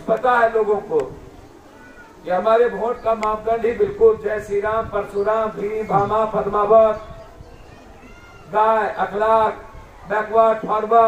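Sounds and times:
man speaking drawn-out syllables: 0:02.2 - 0:07.0.

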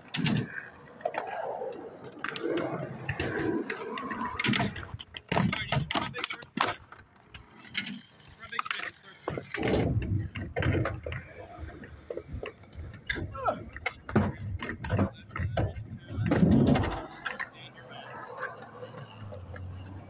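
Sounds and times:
people's voices: 0:00.0 - 0:20.0
skateboard clacks and knocks: 0:00.0 - 0:20.0
wheels rolling on concrete: 0:00.0 - 0:20.0.

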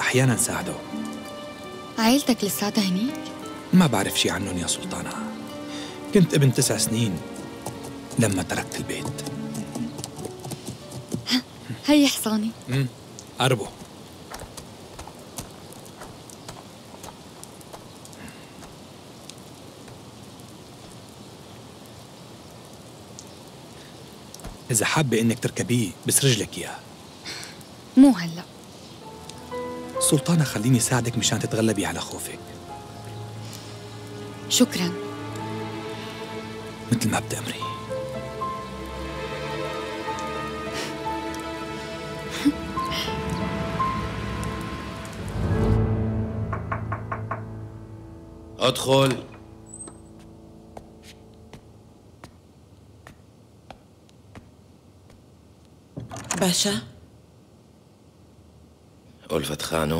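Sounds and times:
background music: 0:00.0 - 0:12.6, 0:29.0 - 0:52.2
outdoor ambient hiss: 0:00.0 - 0:59.9
knocks on a door: 0:46.5 - 0:47.6.

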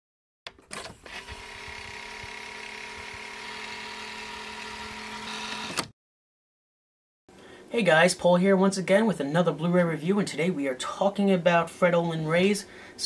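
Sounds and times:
motor clicks: 0:00.5 - 0:05.9
small motor whirring: 0:00.8 - 0:05.9.

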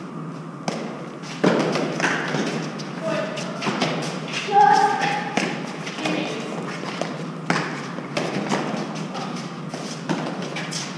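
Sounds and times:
ball bouncing off court walls: 0:00.6 - 0:02.6, 0:04.8 - 0:10.6.

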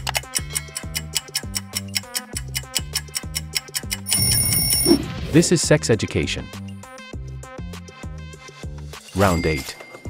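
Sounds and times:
timer ticking: 0:00.0 - 0:04.9
alarm clock bell ringing: 0:04.1 - 0:04.9, 0:09.1 - 0:10.0.

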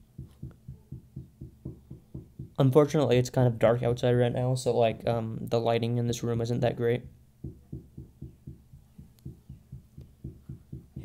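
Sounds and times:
soft muffled low thumps: 0:00.0 - 0:02.8, 0:07.0 - 0:11.0.

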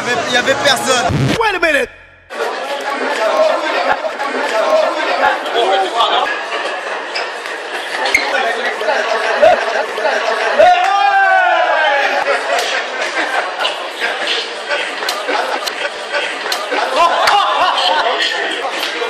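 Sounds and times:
chatter of onlookers: 0:02.3 - 0:19.0.

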